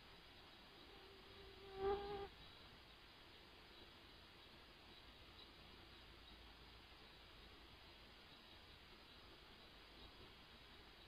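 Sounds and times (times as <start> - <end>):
flying insect buzzing: 0.9 - 2.3.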